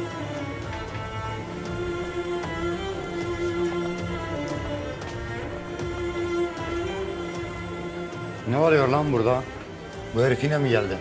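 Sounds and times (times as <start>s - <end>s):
bowed strings holding long notes: 0.0s - 11.0s.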